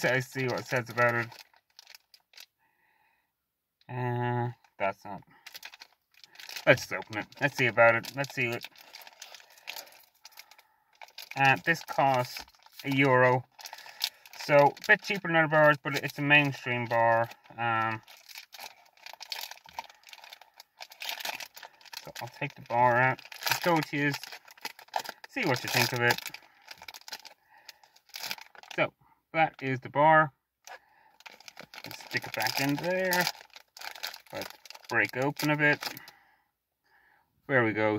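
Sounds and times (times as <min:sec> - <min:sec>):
wrapper crinkling and tearing: 0:00.0 - 0:02.5, 0:05.4 - 0:28.8, 0:31.2 - 0:36.1.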